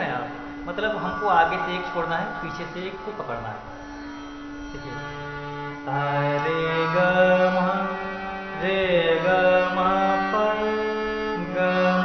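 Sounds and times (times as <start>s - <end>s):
harmonium playing scale pattern: 0.0s - 12.0s.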